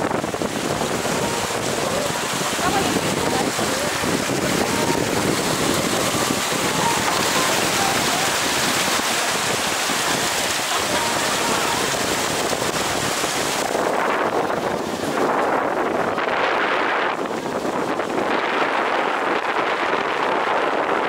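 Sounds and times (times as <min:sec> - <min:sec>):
water rushing past hull: 0:00.0 - 0:21.0
wind buffeting microphone: 0:00.0 - 0:21.0.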